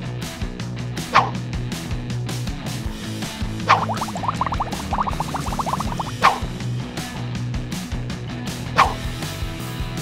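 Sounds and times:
upbeat background music: 0.6s - 1.9s, 2.6s - 10.0s
bubbling sound effects: 3.6s - 6.5s.

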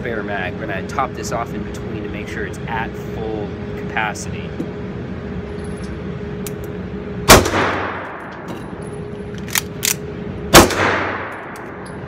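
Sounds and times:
pistol shots echoing: 7.3s - 8.2s, 10.5s - 11.6s.

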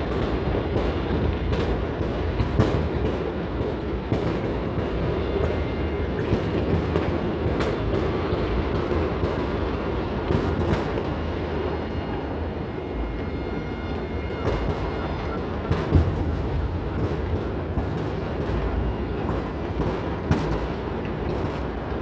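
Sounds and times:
distant fireworks rumble: 0.0s - 22.0s
sharp firework cracks: 15.6s - 22.0s.

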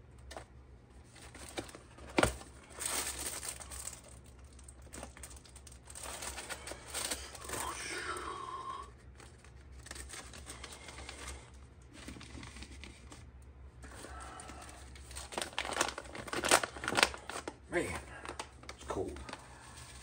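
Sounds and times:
steady low hum: 0.0s - 20.0s
paper filter rustling: 0.2s - 7.8s, 9.0s - 20.0s.

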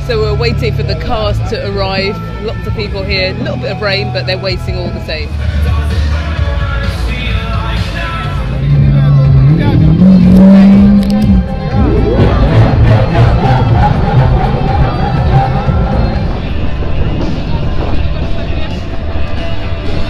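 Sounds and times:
crowd noise: 0.0s - 20.0s
music: 0.0s - 20.0s
car engine revving past: 8.1s - 17.6s.

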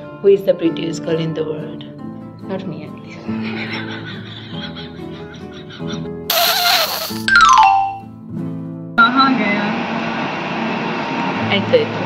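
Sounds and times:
guitar music: 1.4s - 6.3s
harsh screech sound effect: 6.3s - 7.3s.

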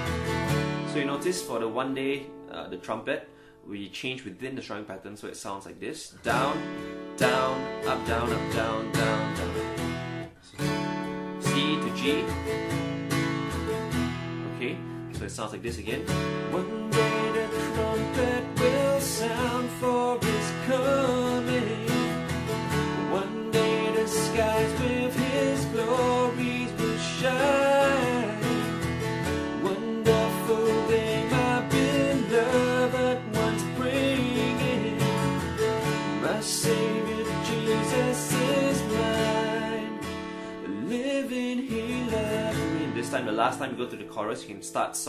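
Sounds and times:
acoustic guitar strumming: 0.0s - 3.6s, 6.2s - 45.0s
man singing: 6.2s - 9.8s, 11.4s - 12.4s, 15.4s - 44.9s.

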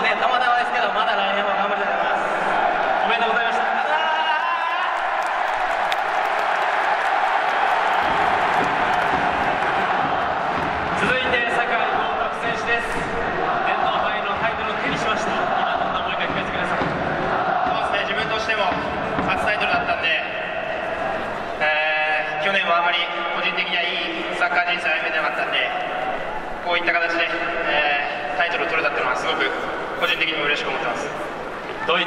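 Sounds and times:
stadium crowd cheering: 0.0s - 32.0s.

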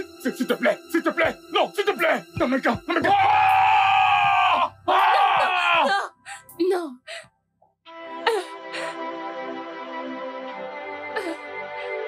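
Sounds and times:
person screaming: 3.0s - 6.1s.

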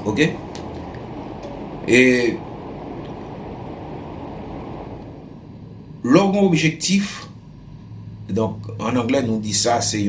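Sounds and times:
steady low background noise: 0.0s - 10.0s.

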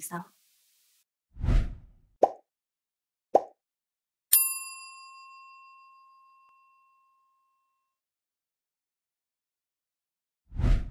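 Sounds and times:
bright bell ding: 4.3s - 7.5s.

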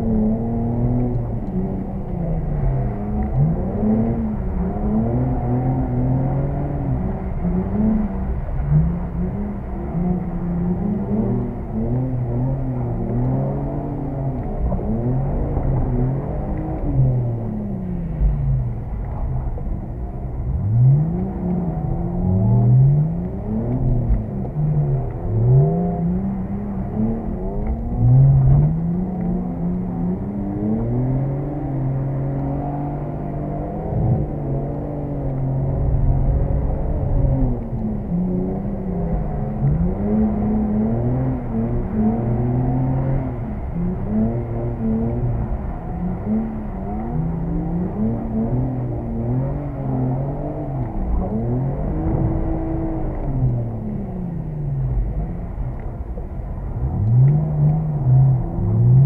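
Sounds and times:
car engine revving from inside: 0.0s - 59.0s.

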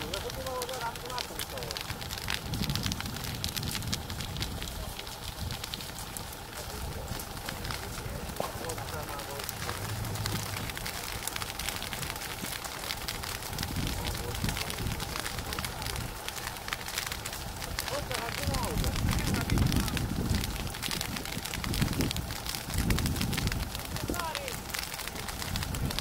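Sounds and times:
fire crackling and popping: 0.0s - 26.0s
low rumble: 1.1s - 26.0s.

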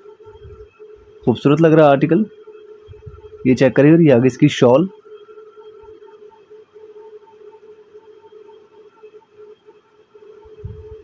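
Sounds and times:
faint pulsing tone: 0.0s - 11.0s
steady low hum: 0.0s - 11.0s.

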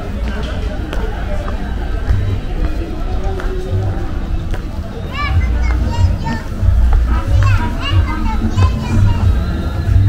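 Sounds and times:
voices in the street: 0.0s - 10.0s
child calling and chattering: 5.0s - 9.5s.

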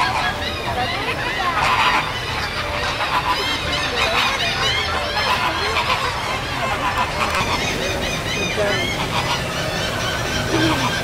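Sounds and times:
flock of birds honking and squawking: 0.0s - 11.0s.

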